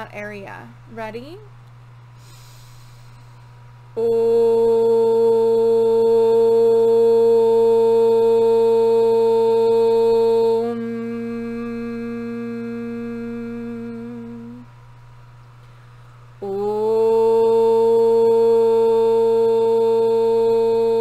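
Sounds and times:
woman singing a long held note: 4.0s - 14.7s, 16.4s - 21.0s.

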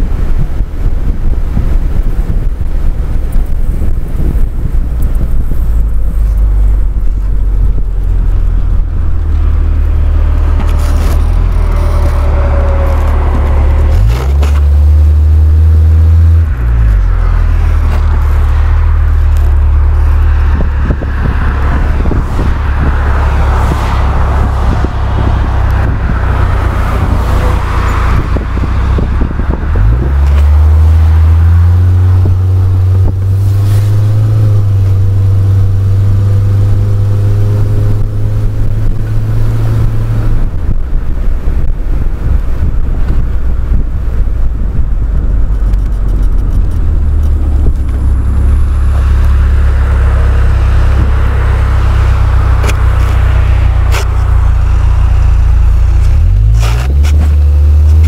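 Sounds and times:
car engine: 0.0s - 58.0s
rushing wind: 0.0s - 58.0s.

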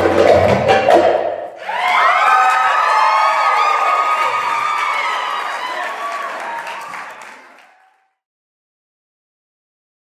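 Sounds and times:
audience cheering: 1.6s - 8.2s.

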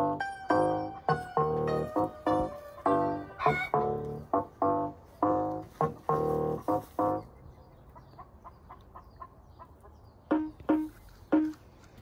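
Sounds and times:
chicken clucks: 1.1s - 4.2s, 5.8s - 11.6s.

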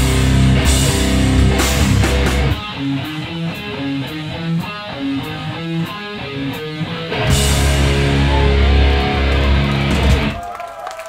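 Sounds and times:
electric guitar riff: 0.0s - 10.4s
hardcore band playing: 0.0s - 10.4s.

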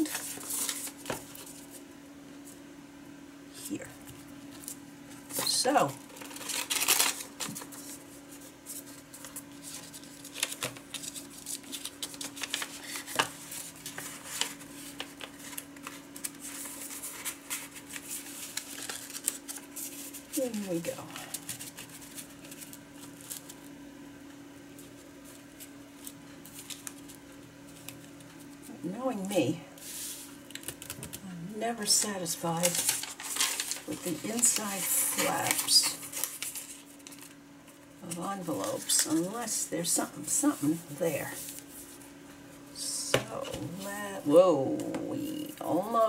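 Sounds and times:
paper envelopes rustling: 0.0s - 1.8s, 4.0s - 23.8s, 24.7s - 42.2s, 43.1s - 46.0s
faint steady hum: 0.0s - 46.0s.

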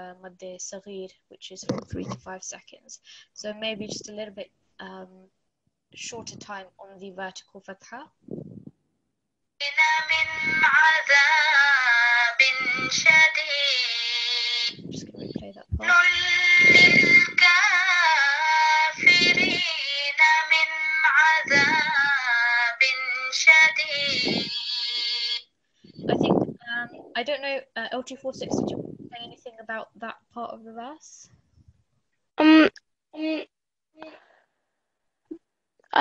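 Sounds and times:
person chanting recitation: 9.6s - 25.4s.

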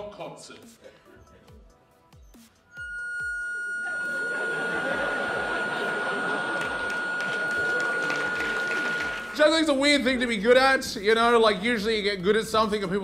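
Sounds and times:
high harmonica note: 2.7s - 9.8s
audience laughter: 4.0s - 9.2s.

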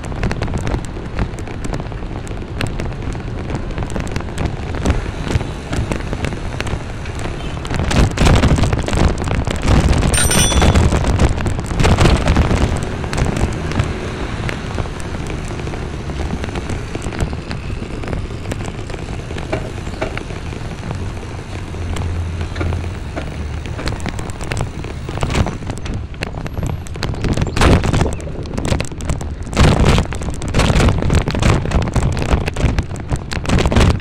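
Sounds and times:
mount crackling and knocking: 0.0s - 34.0s
wind buffeting microphone: 0.0s - 34.0s.

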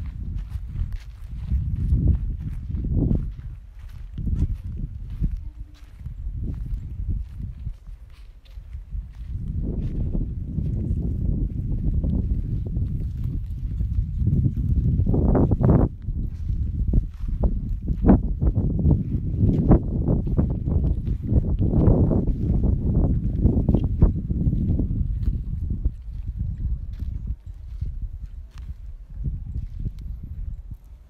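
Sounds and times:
footsteps crunching on dirt: 0.0s - 31.0s
wind buffeting microphone: 0.0s - 31.0s.

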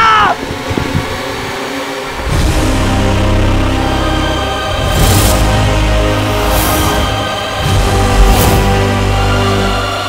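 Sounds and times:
high-pitched scream: 0.0s - 0.4s
rushing wind: 0.0s - 10.0s.

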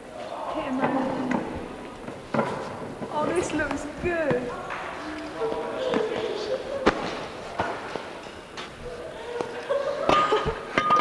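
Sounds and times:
indistinct voices: 0.0s - 10.9s.

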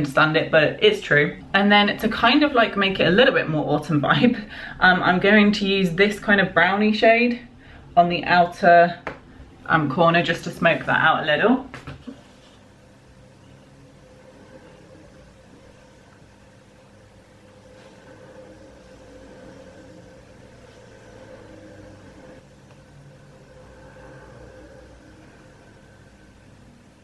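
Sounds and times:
steady mechanical hum: 0.0s - 27.0s.

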